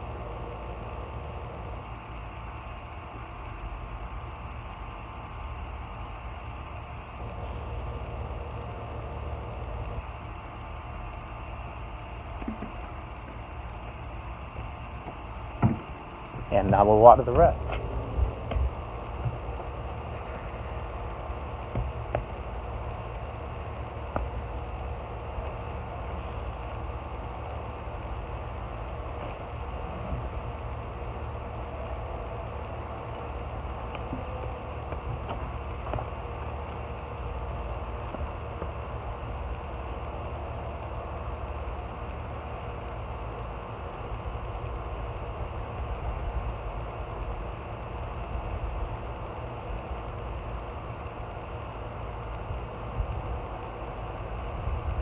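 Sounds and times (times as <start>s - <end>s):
low rumble: 16.4s - 21.6s.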